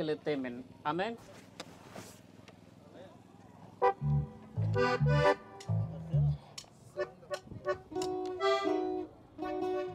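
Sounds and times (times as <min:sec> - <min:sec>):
faint outdoor background noise: 0:00.0 - 0:09.9.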